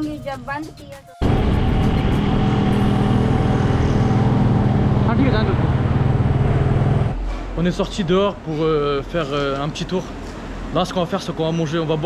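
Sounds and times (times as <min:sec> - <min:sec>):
vehicle engine running: 0:01.2 - 0:07.2.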